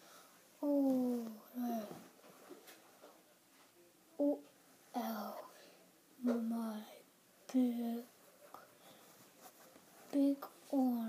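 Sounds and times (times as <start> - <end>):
soft handling of plush puppet: 8.1 - 11.0.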